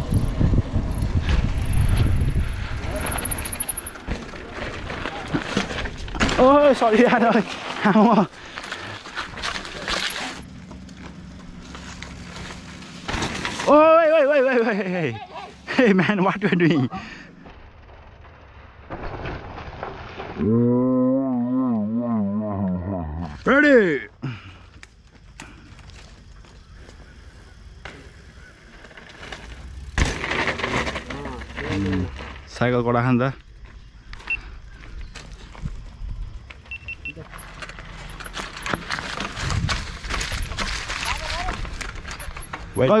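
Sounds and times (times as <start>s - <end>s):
bike chain and frame rattling: 0.0s - 16.6s, 27.9s - 34.2s, 34.8s - 43.0s
bike tyres crunching over stones: 0.0s - 20.9s, 23.2s - 43.0s
man shouting: 13.7s - 15.6s.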